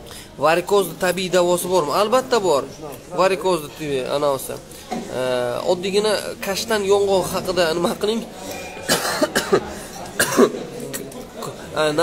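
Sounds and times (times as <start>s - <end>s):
man coughing: 8.6s - 10.7s.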